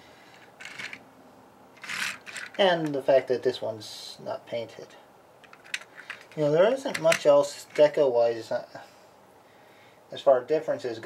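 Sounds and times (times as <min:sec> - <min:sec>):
plastic toy rustling on tabletop: 0:00.4 - 0:01.0, 0:01.8 - 0:02.7.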